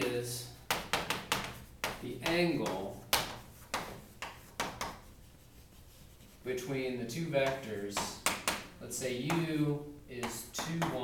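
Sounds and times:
chalk tapping and scraping on blackboard: 0:00.5 - 0:11.0.

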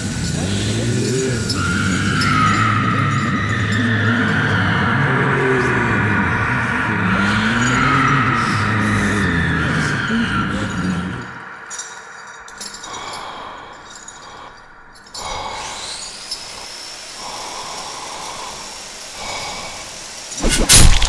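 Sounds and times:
voice: 0:00.0 - 0:03.1, 0:04.1 - 0:11.4
low uneasy noise: 0:00.0 - 0:18.5
thin high whine: 0:00.0 - 0:21.0
sudden loud burst: 0:20.4 - 0:21.0.

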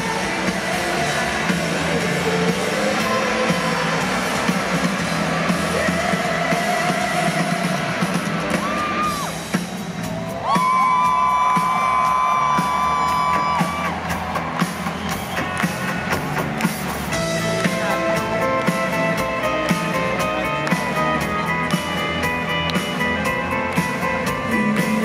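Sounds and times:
live rock band with vocals: 0:00.0 - 0:25.0.

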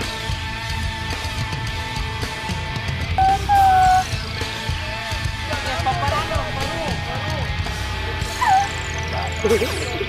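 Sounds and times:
rock music: 0:00.0 - 0:10.0
loud high held notes: 0:03.2 - 0:04.1.

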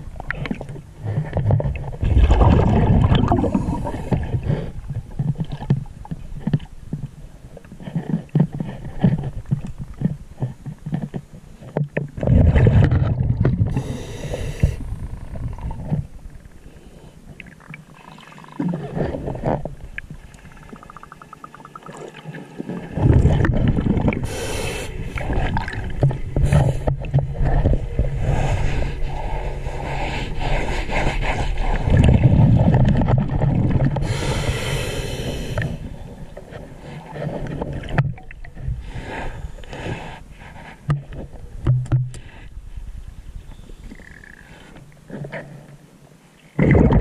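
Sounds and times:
exhaled bubbles rumbling underwater: 0:00.0 - 0:06.4, 0:12.1 - 0:16.6, 0:17.3 - 0:39.6, 0:46.6 - 0:47.0
bubbles gurgling underwater: 0:02.0 - 0:05.6, 0:20.6 - 0:24.3, 0:25.2 - 0:27.8
regulator inhalation hiss: 0:13.7 - 0:14.8, 0:24.2 - 0:25.2, 0:34.0 - 0:35.8.

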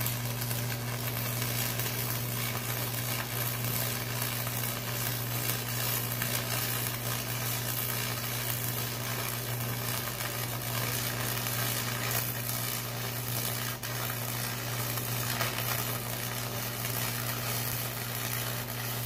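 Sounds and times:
welding arc sizzling crackle: 0:00.0 - 0:19.0.

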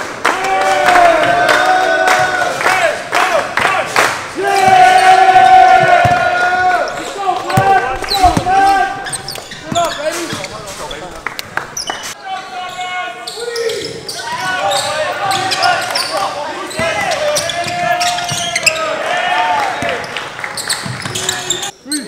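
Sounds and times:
players' voices: 0:00.3 - 0:20.2
sneakers squeaking on wooden floor: 0:04.6 - 0:19.0, 0:20.5 - 0:22.0
basketball bouncing: 0:05.7 - 0:10.6.

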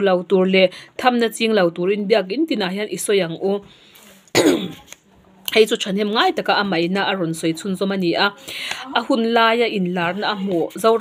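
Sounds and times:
woman speaking: 0:00.0 - 0:03.7, 0:04.6 - 0:11.0
woman coughing: 0:04.3 - 0:04.9.

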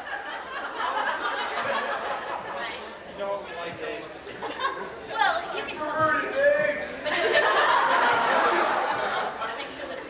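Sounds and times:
chatter of voices in hall: 0:00.0 - 0:10.0.

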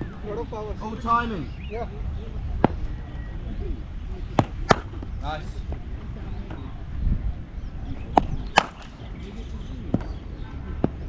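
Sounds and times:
cricket ball knocking on bat: 0:04.4 - 0:05.1.

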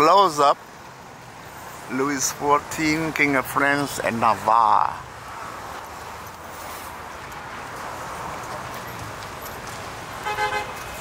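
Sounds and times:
outdoor background hubbub: 0:00.0 - 0:11.0.

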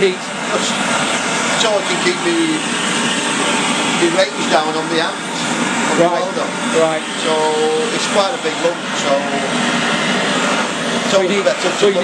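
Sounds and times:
gas torch flame hissing: 0:00.0 - 0:12.0.

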